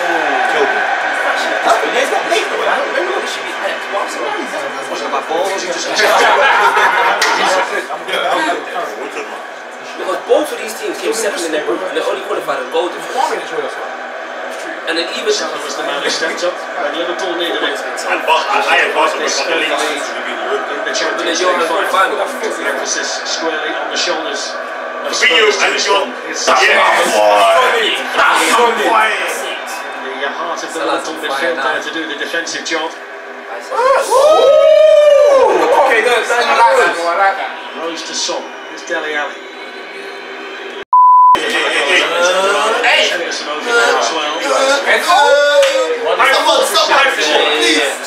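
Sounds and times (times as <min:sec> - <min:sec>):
men's voices talking: 0:00.0 - 0:40.0, 0:41.4 - 0:48.0
laughter: 0:06.0 - 0:07.8
censor bleep: 0:40.9 - 0:41.4.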